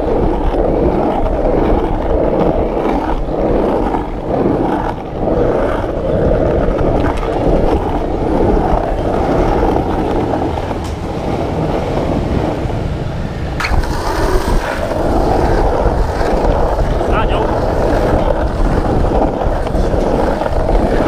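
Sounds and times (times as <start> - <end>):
skateboard wheels rolling on asphalt: 0.0 - 21.0.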